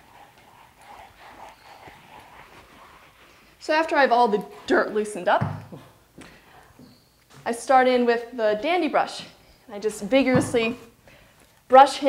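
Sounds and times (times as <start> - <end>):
curry comb scrubbing horse coat: 0.0 - 5.2.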